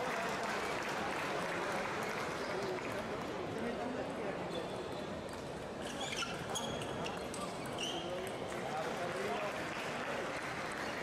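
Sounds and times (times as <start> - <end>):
shoe squeaks on floor: 5.8 - 8.1.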